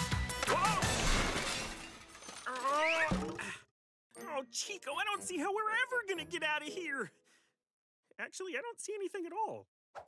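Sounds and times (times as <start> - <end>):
clattering crash: 0.8 - 3.4.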